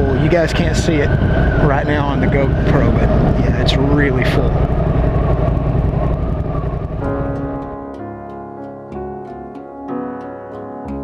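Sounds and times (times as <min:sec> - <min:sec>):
wind noise: 0:00.0 - 0:08.0
motorcycle engine: 0:00.8 - 0:08.0.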